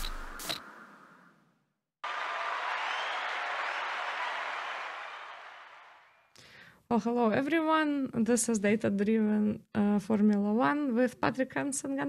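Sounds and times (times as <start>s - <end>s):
crowd applause: 2.0s - 6.3s.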